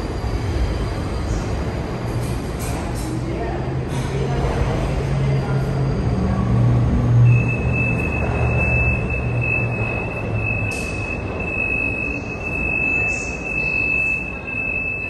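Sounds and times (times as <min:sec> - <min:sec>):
train wheels squealing on rails: 0:00.0 - 0:03.2, 0:04.7 - 0:15.0
train rumble: 0:00.0 - 0:15.0.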